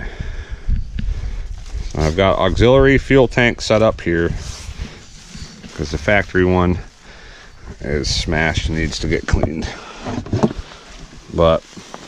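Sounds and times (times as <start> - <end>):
low rumble on microphone: 0.0 - 11.8
footsteps in grass: 1.5 - 2.6, 3.7 - 9.4.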